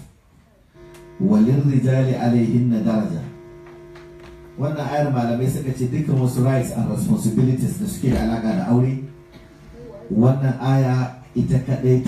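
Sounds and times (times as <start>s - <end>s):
steady electrical hum: 0.0s - 12.0s
man chanting melodically: 0.8s - 9.4s.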